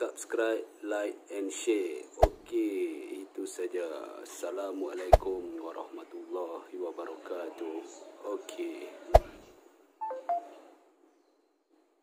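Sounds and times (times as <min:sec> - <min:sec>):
short electronic beeps: 0:10.0 - 0:10.6.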